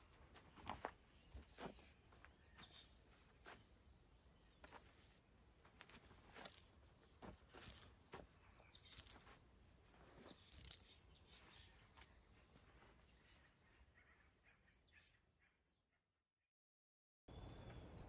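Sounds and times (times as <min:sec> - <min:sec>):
feet scuffing on dirt: 0:00.0 - 0:03.9, 0:04.5 - 0:13.0
small birds chirping: 0:00.0 - 0:16.0.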